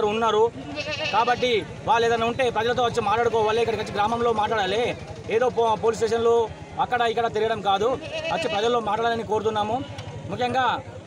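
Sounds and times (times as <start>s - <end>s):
goat bleating: 0.6s - 1.6s, 7.7s - 9.0s.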